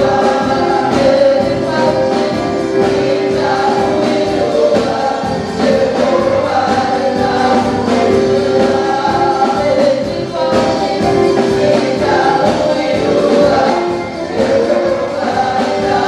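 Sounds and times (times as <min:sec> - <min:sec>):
drum kit beat: 0:00.0 - 0:16.0
group of singers: 0:00.0 - 0:16.0
keyboard: 0:00.0 - 0:16.0.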